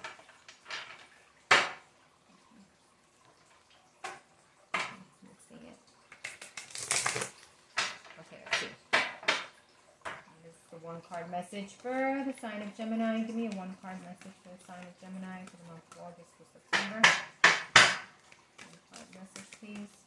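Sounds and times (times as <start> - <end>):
cards being shuffled: 6.2 - 7.4, 18.2 - 20.0
cards slapping: 17.8 - 19.9.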